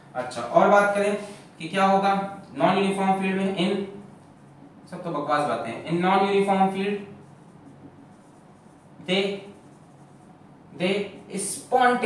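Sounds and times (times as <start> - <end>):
marker pen writing on whiteboard: 5.5 - 12.0.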